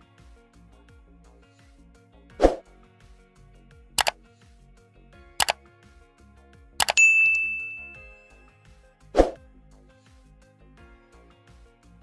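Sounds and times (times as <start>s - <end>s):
faint background music: 0.0s - 12.0s
notification bell ding: 6.8s - 8.4s.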